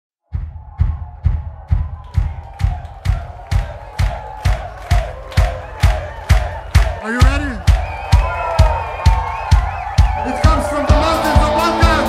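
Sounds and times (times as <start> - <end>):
kick drum beat: 0.2 - 12.0
crowd voices: 3.4 - 12.0.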